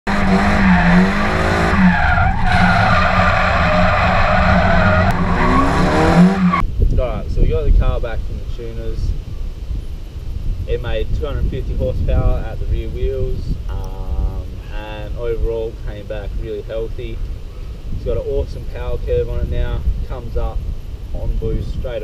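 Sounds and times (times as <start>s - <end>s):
car engine revving: 0.0s - 6.6s
tyres squealing: 0.1s - 6.6s
man talking: 6.9s - 9.2s, 10.7s - 17.2s, 18.0s - 20.6s, 21.2s - 22.0s.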